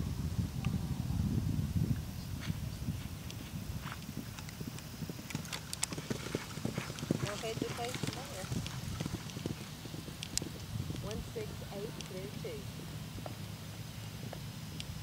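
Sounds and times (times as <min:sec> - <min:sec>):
horse hoofbeats on grass: 0:02.3 - 0:14.5.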